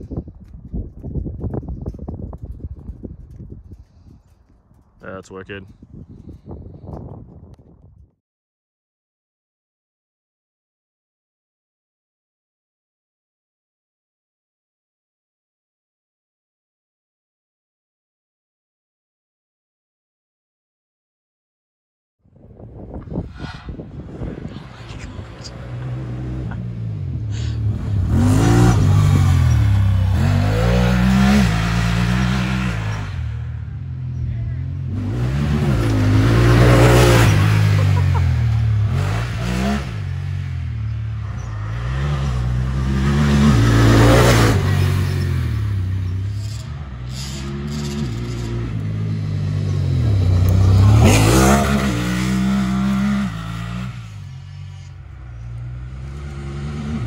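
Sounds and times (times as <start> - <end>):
engine revving and shifting: 24.4 - 33.4, 34.4 - 57.0.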